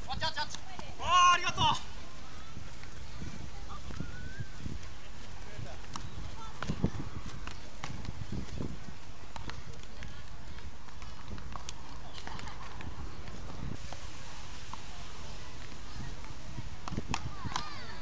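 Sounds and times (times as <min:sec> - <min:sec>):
footsteps on sand: 0:00.0 - 0:17.3
faint distant voices: 0:00.0 - 0:18.0
steady outdoor noise: 0:00.0 - 0:18.0.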